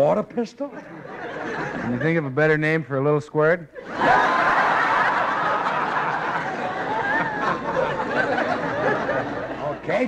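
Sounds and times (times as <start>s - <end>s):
audience laughing: 0.7s - 2.4s, 3.8s - 10.0s.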